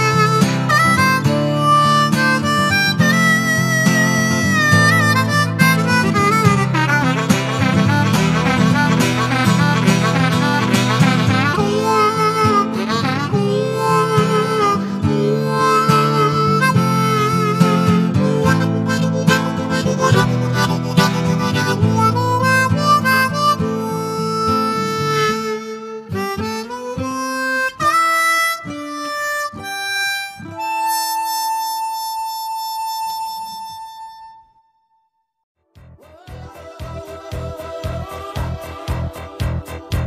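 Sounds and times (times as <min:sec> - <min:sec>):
harmonica playing: 0:00.0 - 0:34.9, 0:36.0 - 0:40.0.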